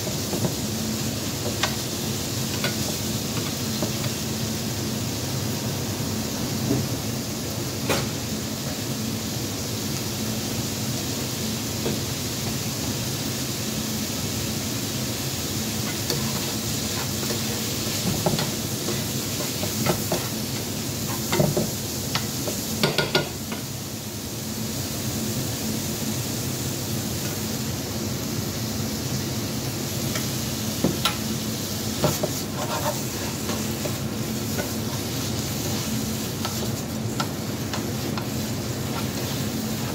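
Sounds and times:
noodles sizzling in frying pan: 0:00.0 - 0:39.9.

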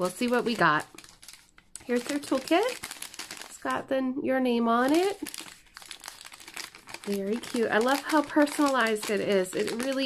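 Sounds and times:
paper packaging crinkling: 0:00.0 - 0:03.8, 0:04.7 - 0:10.0.

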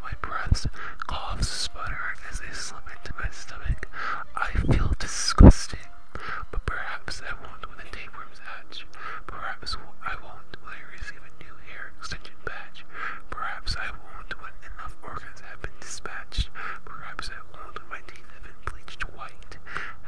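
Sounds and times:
person whispering: 0:00.0 - 0:20.0.

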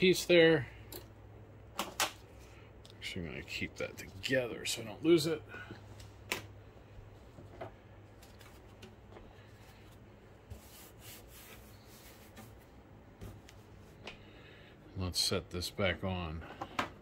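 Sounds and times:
faint steady low hum: 0:00.0 - 0:17.0.

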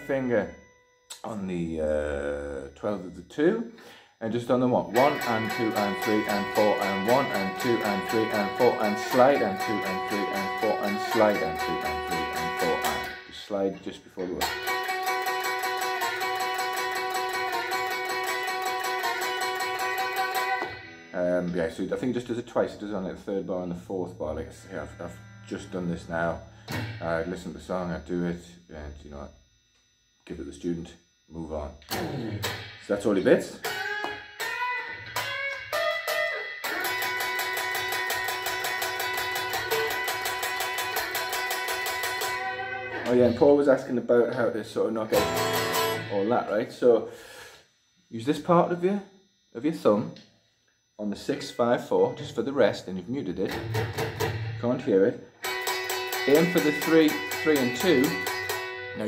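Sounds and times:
electric guitar picked rapidly: 0:00.0 - 0:28.5, 0:31.3 - 0:47.5, 0:51.2 - 0:59.0.

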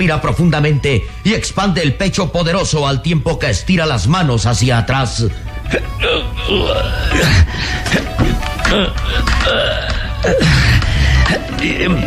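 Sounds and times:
dramatic background music: 0:05.0 - 0:12.0
man straining vocally: 0:05.6 - 0:12.0.

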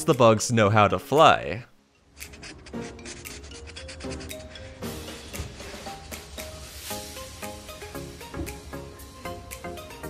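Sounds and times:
background music: 0:00.0 - 0:10.0
marker rubbing on paper: 0:02.1 - 0:06.8.

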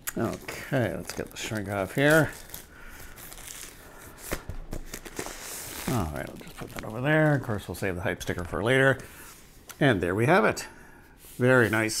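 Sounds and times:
plastic shrink wrap crinkling: 0:00.0 - 0:09.0.

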